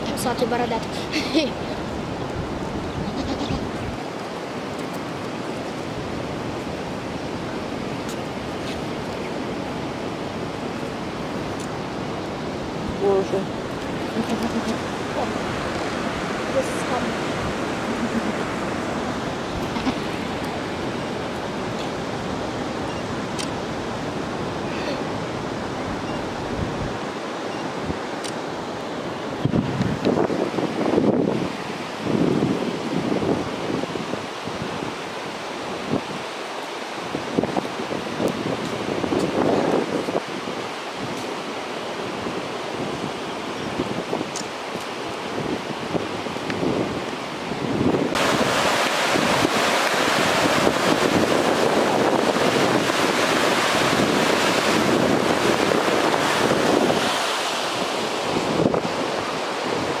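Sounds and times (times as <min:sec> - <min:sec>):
wind buffeting microphone: 0:00.0 - 0:28.2, 0:29.0 - 0:36.4, 0:37.0 - 1:00.0.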